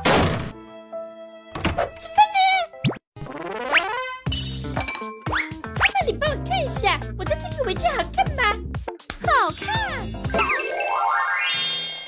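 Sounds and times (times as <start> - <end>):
cartoon thunk sound effect: 0.0 - 0.5
background music with held notes: 0.2 - 2.2.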